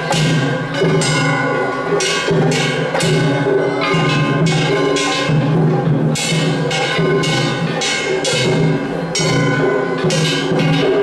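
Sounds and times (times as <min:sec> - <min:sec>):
clanging gongs: 0:00.0 - 0:11.0
taiko drums: 0:00.0 - 0:11.0.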